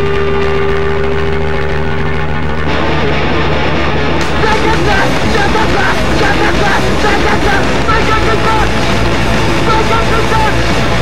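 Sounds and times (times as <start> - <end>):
distorted electric guitar note: 0.0 - 11.0
low drone: 0.0 - 11.0.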